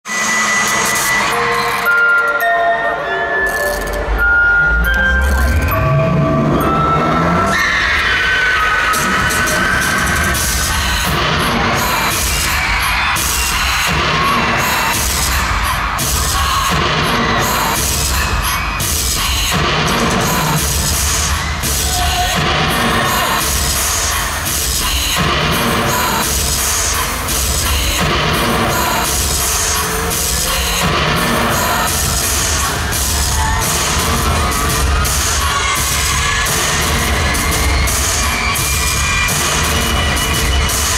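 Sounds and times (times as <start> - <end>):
crowd screaming and cheering: 0.0 - 40.9
loud concert music through pa: 0.0 - 40.9.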